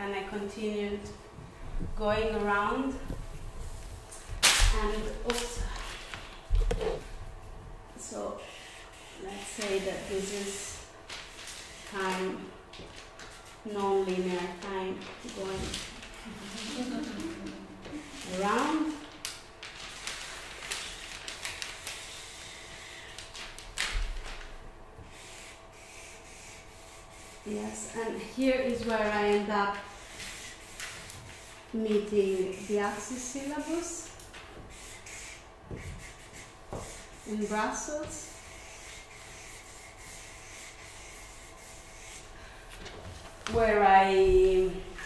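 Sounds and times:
marker scratching on paper: 8.4s - 10.8s, 25.1s - 27.9s, 34.7s - 42.3s
paper rustle and thud: 18.2s - 22.1s, 23.2s - 24.6s.

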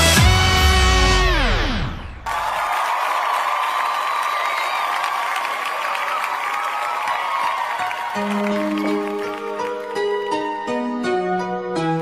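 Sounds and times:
television theme music: 0.0s - 2.4s, 7.7s - 12.0s
studio audience cheering and applauding: 0.0s - 10.8s.

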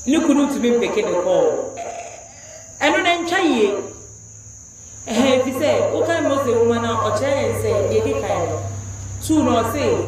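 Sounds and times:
steady high-pitched whine: 0.0s - 10.0s.

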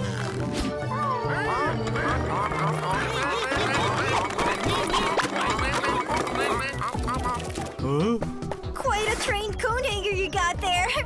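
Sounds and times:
cartoon background music: 0.0s - 11.0s
high wavering cartoon voices: 0.8s - 8.2s.

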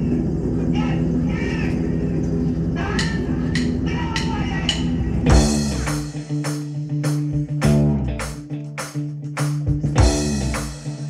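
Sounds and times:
low droning chord: 0.0s - 8.4s, 10.0s - 11.0s.

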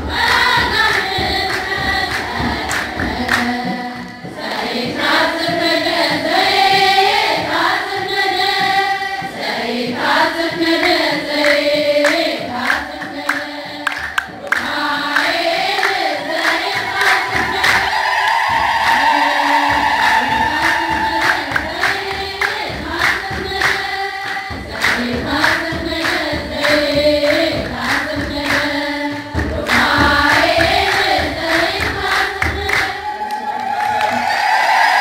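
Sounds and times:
sharp rhythmic strikes: 0.0s - 33.2s
choir singing a hymn: 0.0s - 35.0s.

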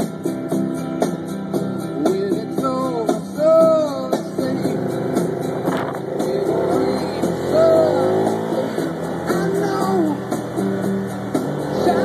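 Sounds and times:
rock music with guitar: 0.0s - 12.0s
car engine accelerating: 4.0s - 12.0s.

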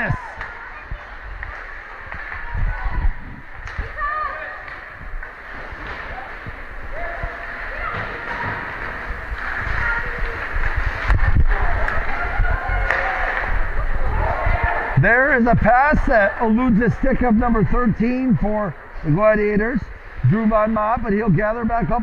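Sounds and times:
spectators chatting: 0.0s - 22.0s
hockey sticks hitting puck: 0.2s - 13.7s
skates scraping ice: 0.2s - 15.0s.

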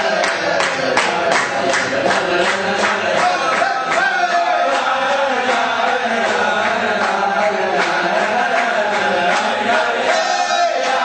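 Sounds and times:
group singing chant-like melody: 0.0s - 11.0s.

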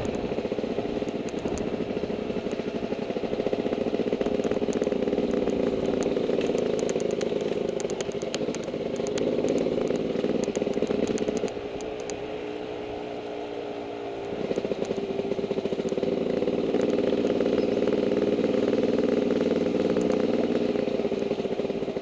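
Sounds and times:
dirt bike engine revving: 12.4s - 22.0s.

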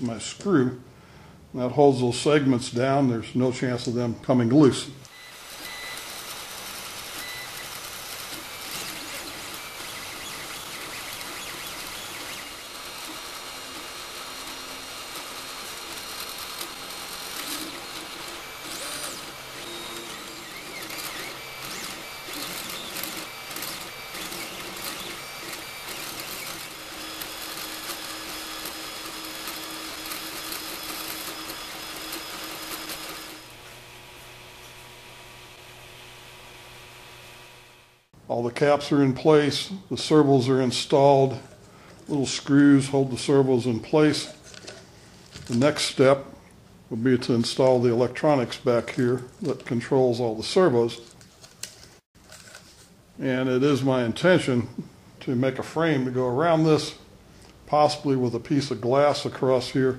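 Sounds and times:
stepper motors whirring: 5.0s - 38.1s.

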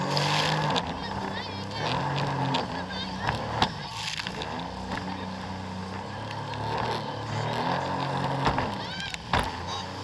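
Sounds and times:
jet ski engine running: 0.0s - 10.0s
rushing water and spray: 0.0s - 10.0s.

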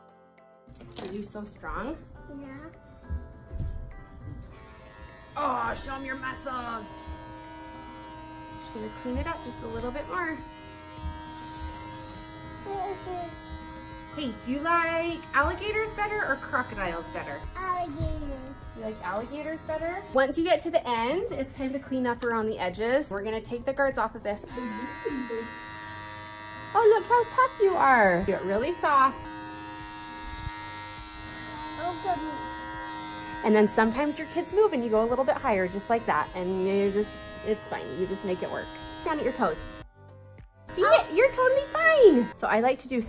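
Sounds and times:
electric hair clippers buzzing: 2.8s - 21.3s, 24.3s - 39.9s, 40.7s - 43.0s.

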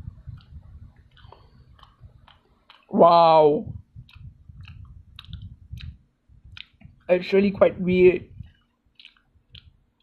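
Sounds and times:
faint mouth clicks: 4.0s - 6.8s, 9.0s - 9.7s
person chewing fries: 8.9s - 9.7s.

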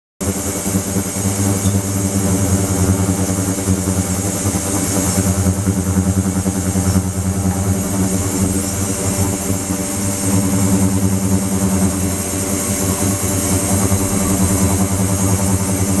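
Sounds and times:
ultrasonic cleaner buzzing: 0.2s - 16.0s.

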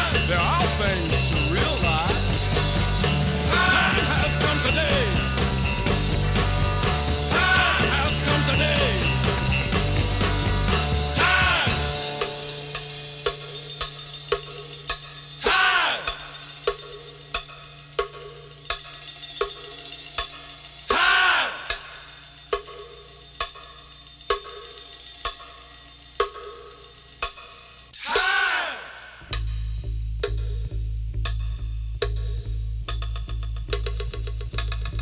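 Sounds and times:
cowbell ticking: 0.0s - 27.8s.

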